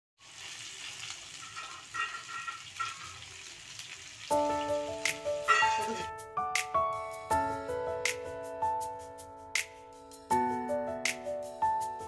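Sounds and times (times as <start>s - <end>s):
food sizzling in hot oil: 0.2s - 6.1s
background music with held notes: 4.3s - 12.0s.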